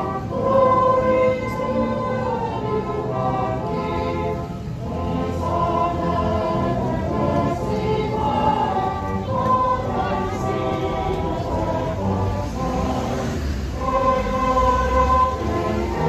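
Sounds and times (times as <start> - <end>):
choir singing a carol: 0.0 - 16.0.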